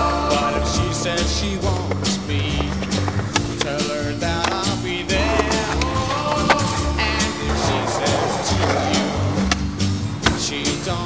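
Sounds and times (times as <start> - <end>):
rock music with bass beat: 0.0 - 11.0
skateboard clacking on concrete: 1.6 - 10.5.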